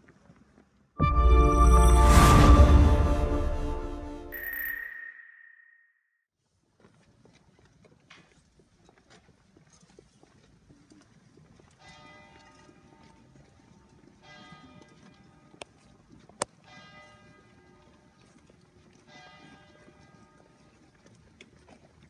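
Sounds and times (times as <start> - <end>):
bell ringing: 1.0 - 5.8
footsteps on paved path: 6.7 - 19.9.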